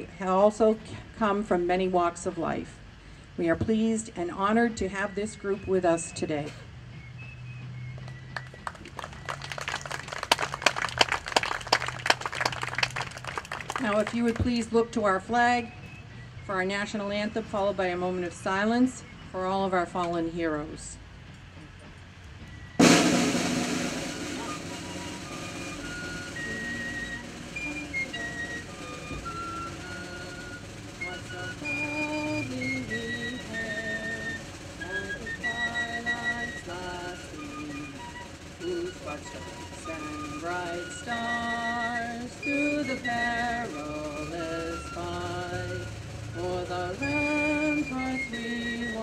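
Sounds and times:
snare drum roll: 8.0s - 14.7s, 22.8s - 49.0s
audience applause: 8.4s - 14.2s.

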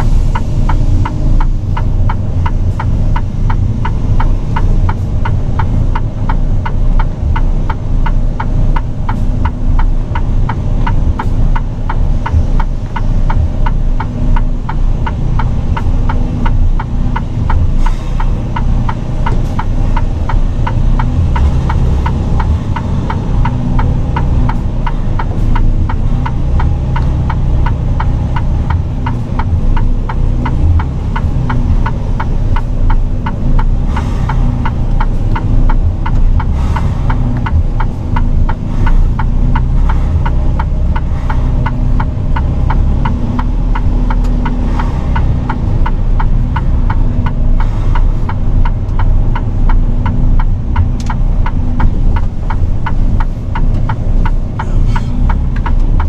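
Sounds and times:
even ticking: 0.0s - 56.0s
truck diesel engine rumbling: 0.0s - 56.0s.

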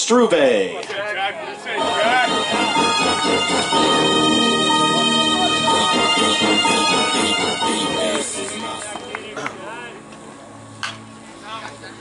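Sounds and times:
distant voices: 0.9s - 12.0s.

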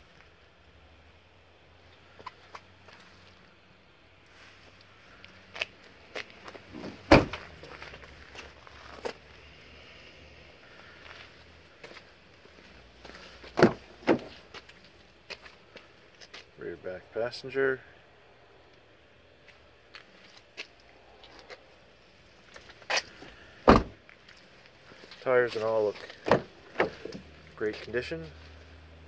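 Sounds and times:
car trunk lid slamming: 6.7s - 7.5s, 13.6s - 14.4s, 23.6s - 24.0s, 26.2s - 27.1s
car door handle and latch clunking: 6.8s - 7.4s, 13.6s - 14.3s, 23.7s - 24.0s, 26.2s - 27.2s
footsteps on pavement: 11.0s - 13.3s, 14.4s - 16.5s.

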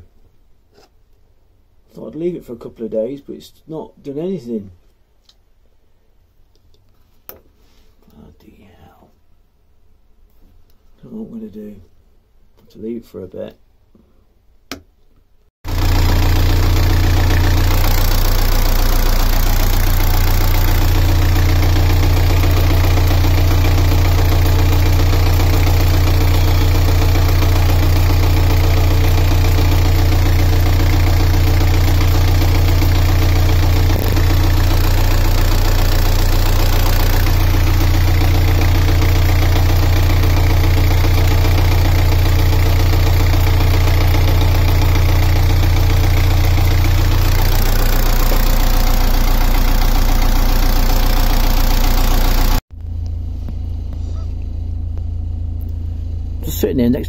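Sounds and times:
diesel engine idling: 15.7s - 57.0s.

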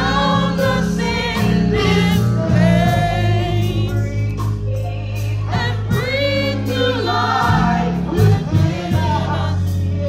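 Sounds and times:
gospel singers singing: 0.0s - 10.0s.

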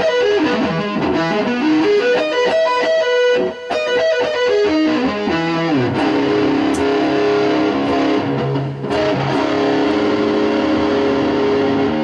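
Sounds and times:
electric guitar sustained note: 5.0s - 12.0s.

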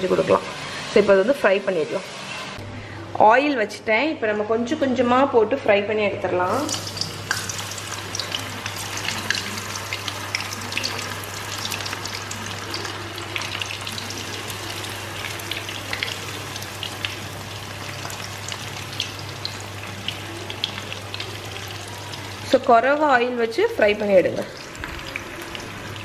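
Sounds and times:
batter frying in hot oil: 6.4s - 26.0s.

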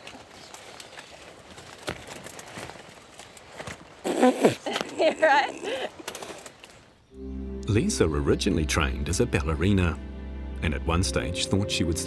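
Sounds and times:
footsteps through wet plants: 0.0s - 4.8s.

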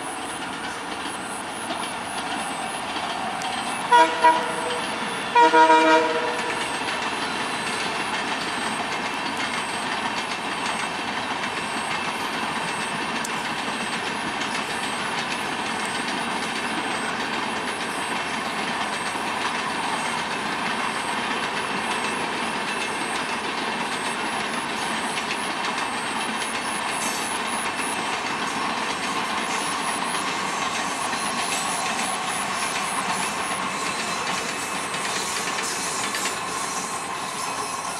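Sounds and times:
train wheels clattering on rails: 0.0s - 37.9s.

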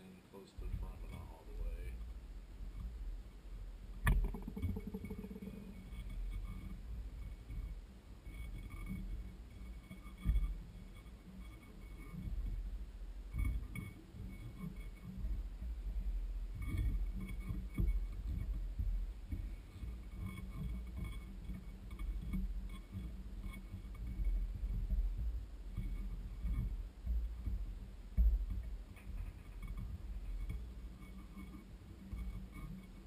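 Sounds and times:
low steady rumble: 0.0s - 33.0s
rapid low metal rattle: 0.5s - 33.0s.

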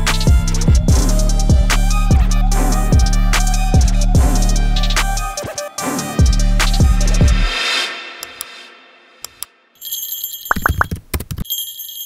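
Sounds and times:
music: 0.0s - 9.8s
bright bell ringing: 9.8s - 12.0s.

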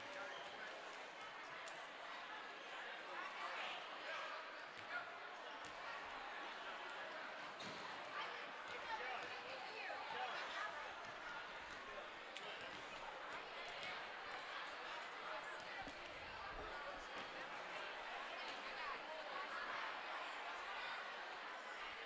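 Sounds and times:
murmur of crowd voices: 0.0s - 22.0s.

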